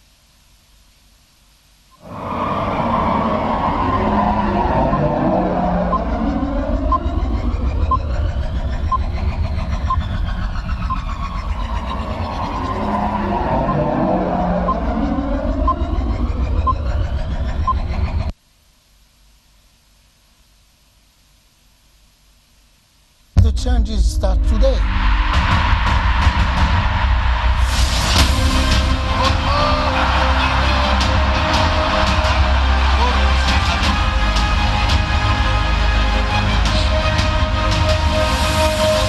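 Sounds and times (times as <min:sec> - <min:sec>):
slow sweeping tones: 0:01.9 - 0:17.3
deep rumbling drone: 0:02.0 - 0:18.3.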